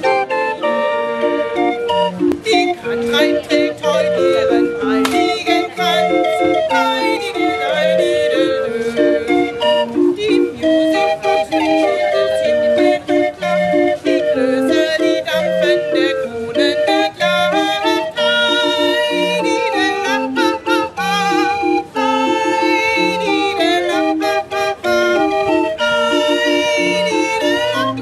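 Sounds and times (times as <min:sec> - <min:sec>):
barrel organ playing: 0:00.0 - 0:28.0
woman singing: 0:02.3 - 0:28.0.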